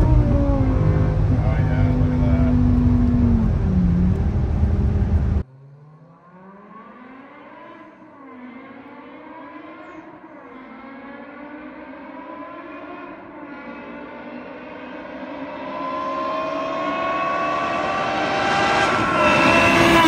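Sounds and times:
car exhaust accelerating: 0.0s - 7.7s.

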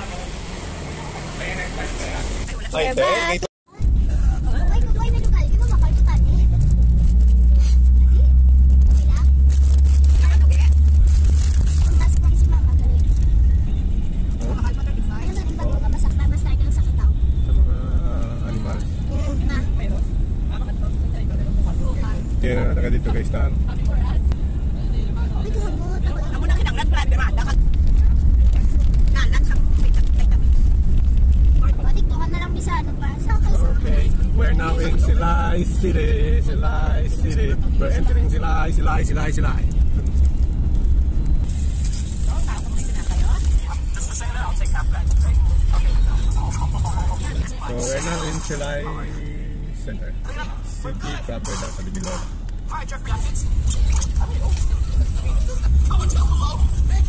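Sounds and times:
voices: 0.0s - 6.8s, 11.7s - 30.8s, 31.6s - 40.2s, 42.2s - 57.0s
engine and road rumble in cabin: 0.0s - 57.0s.

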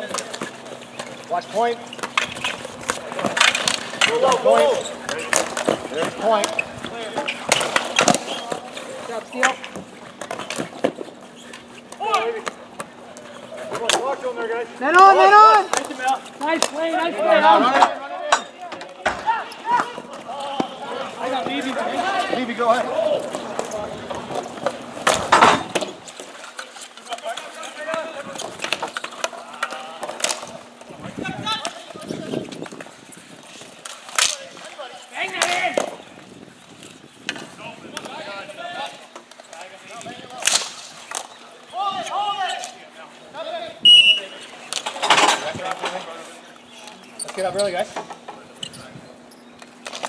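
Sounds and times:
players calling out: 0.0s - 32.8s
hockey sticks and ball clacking: 0.0s - 42.9s, 44.1s - 50.0s
player shouting: 14.8s - 15.7s.

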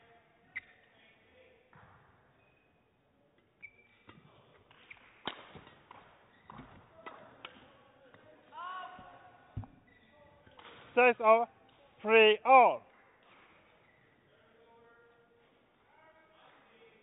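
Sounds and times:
shoe squeaks on court floor: 0.5s - 1.0s, 2.3s - 7.2s, 9.7s - 10.5s.

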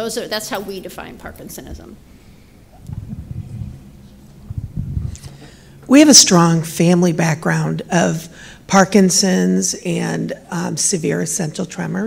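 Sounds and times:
low rumble: 2.7s - 5.7s
low muffled thuds: 2.8s - 5.2s.

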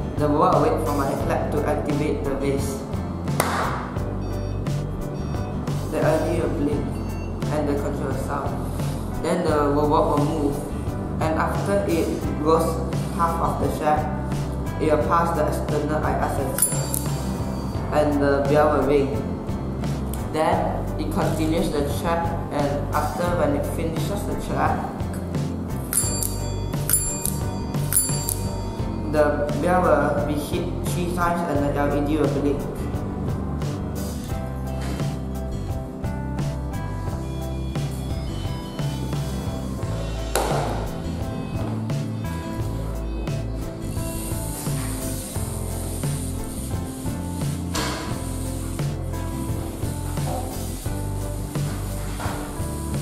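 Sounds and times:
background music: 0.0s - 53.0s
hand clap: 3.4s - 4.0s, 40.4s - 40.9s
desk bell ringing: 16.6s - 17.7s, 25.9s - 28.8s.

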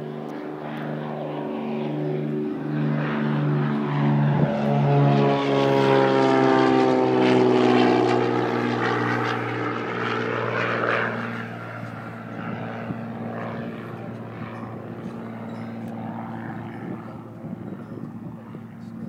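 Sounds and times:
light airplane engine passing: 0.0s - 19.0s.

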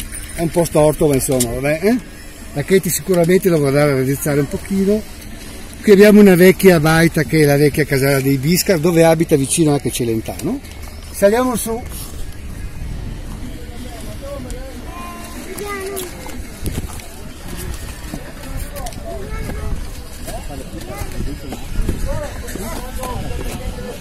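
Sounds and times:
steady low rumble: 11.8s - 15.6s.

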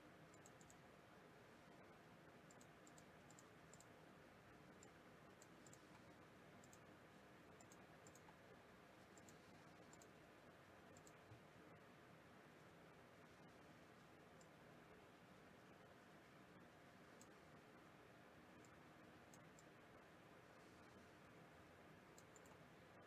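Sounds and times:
computer mouse clicks: 0.3s - 0.8s, 2.5s - 4.0s, 4.7s - 6.9s, 7.6s - 8.4s, 9.1s - 10.2s, 10.9s - 11.4s, 14.4s - 14.6s, 17.1s - 17.4s, 18.6s - 19.8s, 22.1s - 22.6s.

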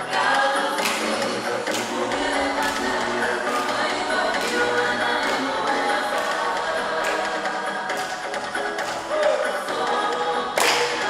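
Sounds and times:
group singing a cappella: 0.0s - 11.0s.

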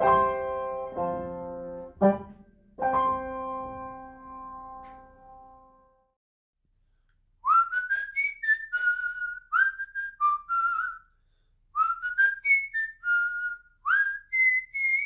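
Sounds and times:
person whistling a tune: 7.4s - 11.2s, 11.8s - 15.0s.

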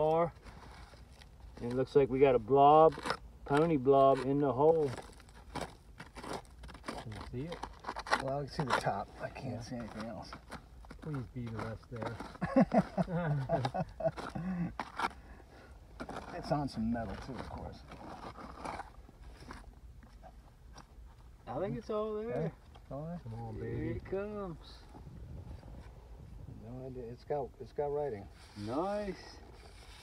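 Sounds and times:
hand tool scraping soil: 0.0s - 20.8s, 28.0s - 30.0s.

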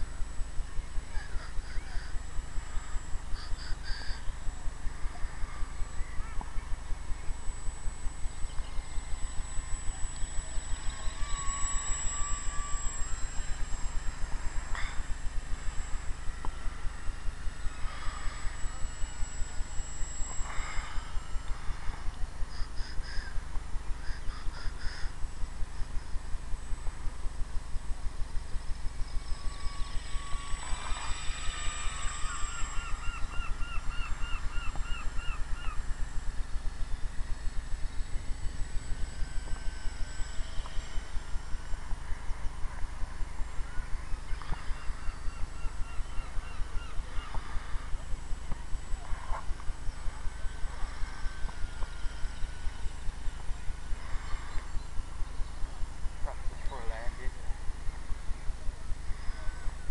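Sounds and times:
low thudding pulse: 0.0s - 59.9s
bird calling: 1.1s - 25.2s, 29.2s - 36.2s, 43.6s - 49.5s.

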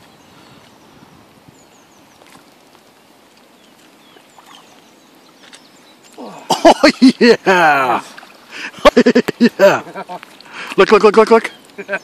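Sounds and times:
bird chirping faintly: 0.0s - 6.4s
light water splashes: 2.0s - 12.0s.

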